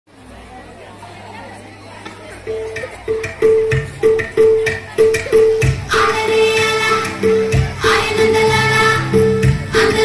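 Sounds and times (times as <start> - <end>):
indistinct chatter: 0.1 - 10.0.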